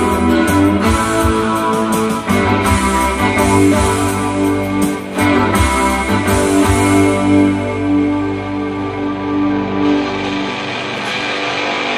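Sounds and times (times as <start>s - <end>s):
electric guitar ringing notes: 0.0s - 11.9s
low bass notes: 0.0s - 11.9s.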